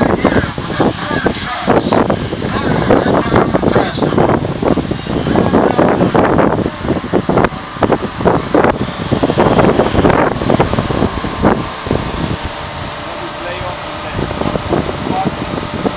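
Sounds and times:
steady background noise: 0.0s - 15.9s.

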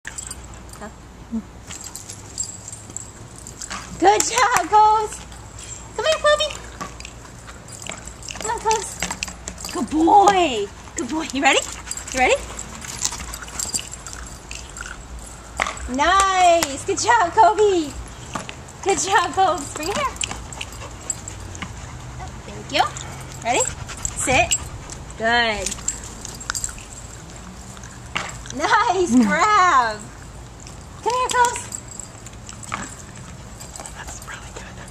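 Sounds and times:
dog breathing: 11.6s - 15.6s, 20.1s - 28.5s, 31.9s - 34.9s.

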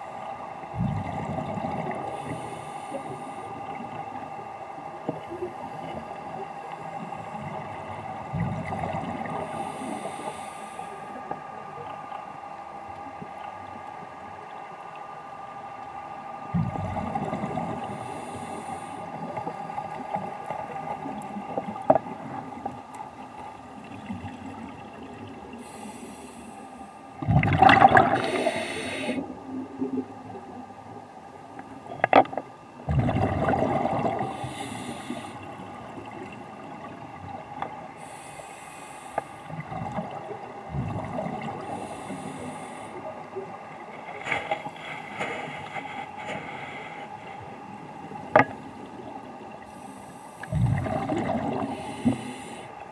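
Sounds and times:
underwater hum: 0.0s - 52.9s
exhaled bubbles underwater: 0.7s - 2.2s, 7.3s - 9.6s, 16.5s - 18.0s, 27.2s - 30.6s, 32.0s - 34.6s, 39.5s - 44.2s, 50.4s - 52.9s
hissing regulator inhalations: 9.4s - 11.1s, 25.6s - 27.0s, 28.2s - 29.2s, 34.3s - 35.5s, 38.0s - 39.4s, 41.6s - 43.0s, 44.6s - 47.4s, 49.7s - 50.8s, 51.7s - 52.8s.

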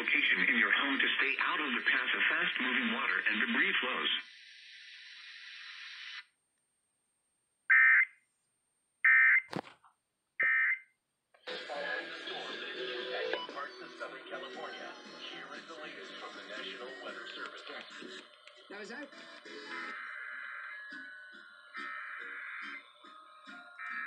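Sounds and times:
radio speech and music: 0.0s - 6.2s, 11.4s - 24.0s
radio static hiss: 0.0s - 6.2s, 11.4s - 20.8s.

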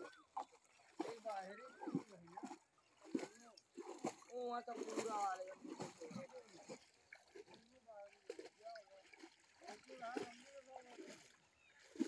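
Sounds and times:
animal splashing in muddy water: 0.0s - 12.0s
people talking: 1.0s - 2.4s, 4.3s - 6.8s, 7.6s - 11.2s.

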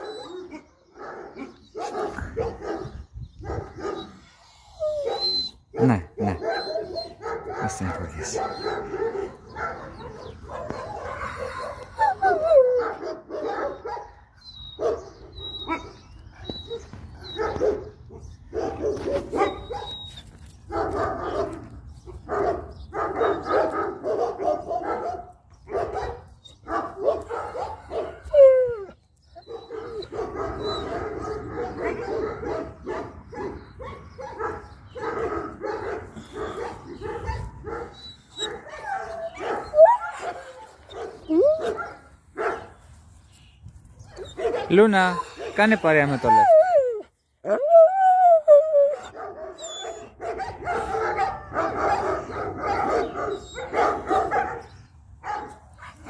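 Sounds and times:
dogs yelping: 0.0s - 42.7s, 44.1s - 56.0s
dogs whining and barking: 0.0s - 43.2s, 43.9s - 56.0s.

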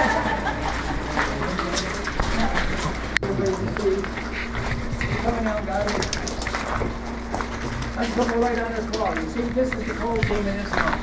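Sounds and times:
steady low hum: 0.0s - 11.0s
footsteps crunching on wet gravel: 0.7s - 11.0s.

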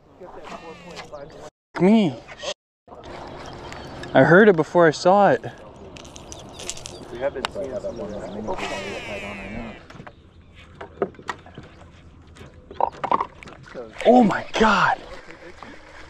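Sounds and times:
low talk: 6.6s - 9.8s.

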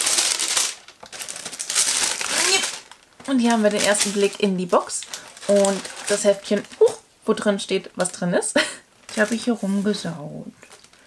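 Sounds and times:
tissue paper rustling: 0.0s - 7.0s, 9.1s - 11.0s.

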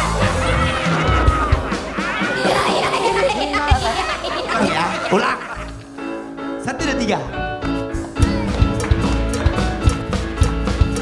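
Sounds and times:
background music: 0.0s - 11.0s
man laughing: 0.2s - 5.9s.

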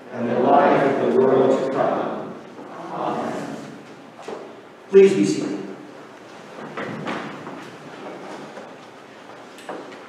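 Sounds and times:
man speaking in reverberant room: 0.0s - 6.0s.

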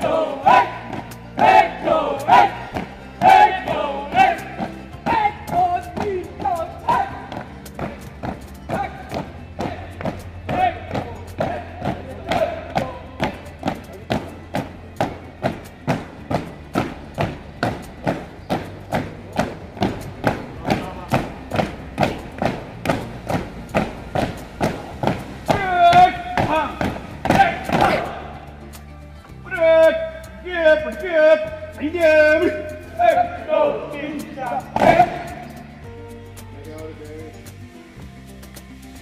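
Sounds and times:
shouted drill commands: 0.0s - 7.3s, 8.7s - 13.2s, 25.5s - 28.3s, 29.5s - 35.5s
marching boots stamping on paving: 0.0s - 28.2s, 34.7s - 35.6s.

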